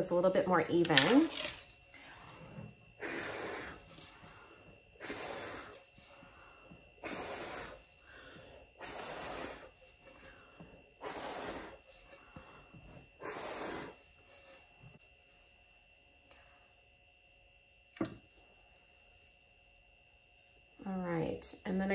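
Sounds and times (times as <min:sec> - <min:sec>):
person blowing puffs of breath: 0:03.0 - 0:10.4, 0:11.0 - 0:12.6, 0:13.2 - 0:14.0.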